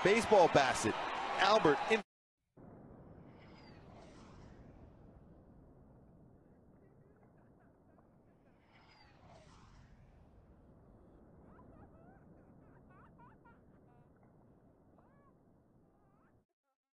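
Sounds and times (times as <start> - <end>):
faint swish: 3.2 - 5.6, 8.6 - 10.6.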